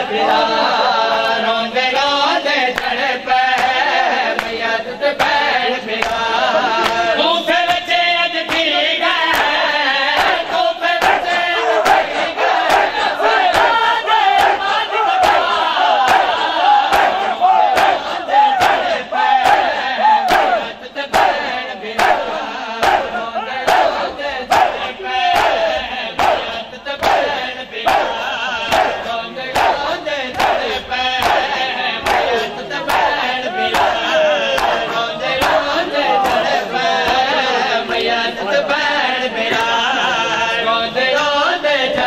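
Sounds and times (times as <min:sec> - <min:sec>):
crowd chanting: 0:00.0 - 0:42.0
hands slapping chests in unison: 0:02.7 - 0:08.7, 0:09.3 - 0:37.3.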